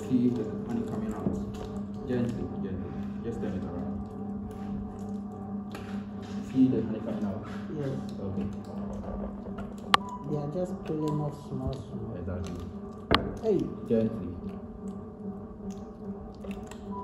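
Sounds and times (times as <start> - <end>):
people talking indistinctly: 0.0 - 4.8, 5.8 - 14.6
faint music: 0.0 - 17.0.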